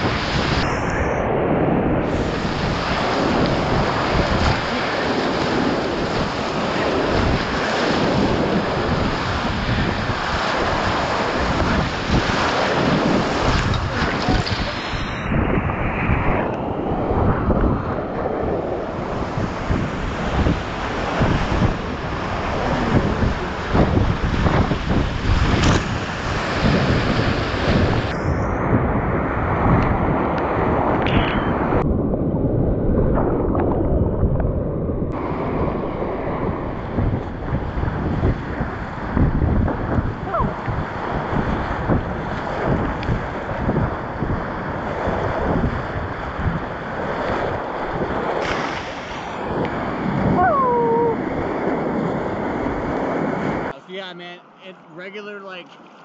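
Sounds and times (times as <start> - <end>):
whitewater rapids rushing: 2.1 - 15.3.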